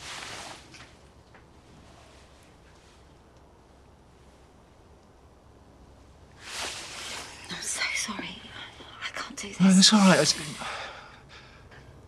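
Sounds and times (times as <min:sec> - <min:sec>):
person speaking: 0:09.4 - 0:10.7
close breathy breathing: 0:10.2 - 0:12.0.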